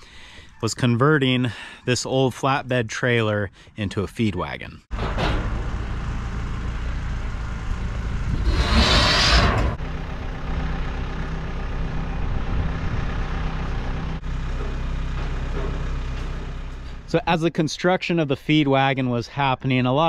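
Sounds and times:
tractor engine idling: 4.9 - 8.4, 9.8 - 18.6
loud burst of hissing: 8.4 - 9.7.

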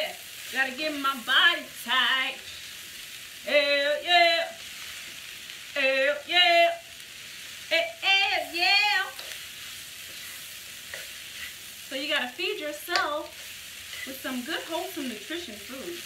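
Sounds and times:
woman singing wordless phrases: 0.0 - 2.5, 3.4 - 4.6, 5.8 - 6.9, 7.7 - 9.2, 11.9 - 13.4, 14.1 - 16.0
vegetables sizzling in a skillet: 0.0 - 16.0.

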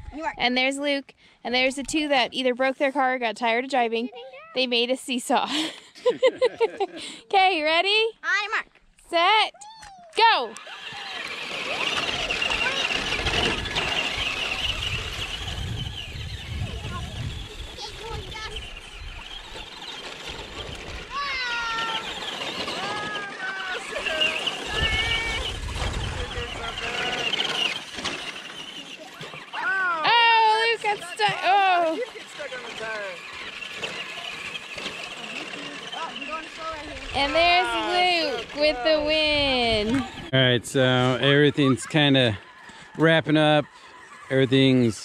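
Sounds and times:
high-pitched voices calling out: 9.3 - 15.4, 21.0 - 27.8, 28.5 - 33.2, 35.0 - 40.5
electric motors whining: 10.2 - 45.0.

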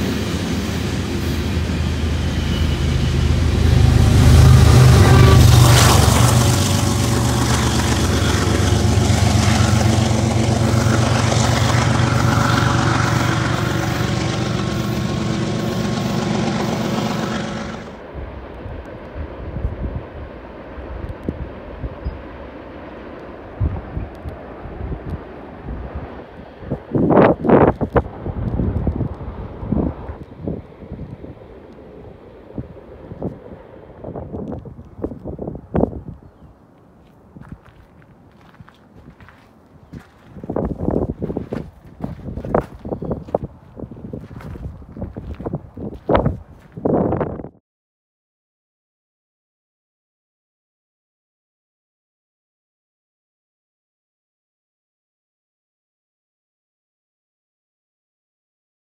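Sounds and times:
freight train wheels rumbling: 0.0 - 47.4.

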